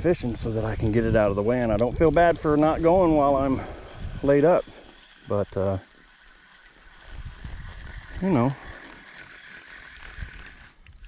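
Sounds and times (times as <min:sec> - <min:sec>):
fishing reel whirring: 0:00.0 - 0:11.0.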